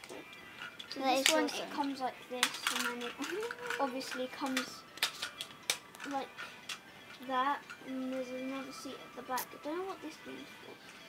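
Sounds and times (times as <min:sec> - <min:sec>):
plastic toy parts clicking: 0:02.4 - 0:06.8.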